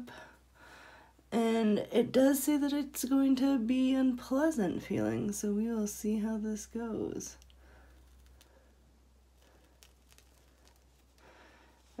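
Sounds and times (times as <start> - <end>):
faint ticks of paste peeling: 7.4 - 8.7, 9.4 - 11.3.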